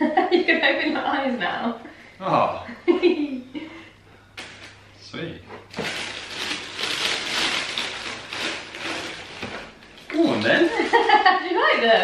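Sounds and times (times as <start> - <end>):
gift packaging rustling: 5.7 - 12.0.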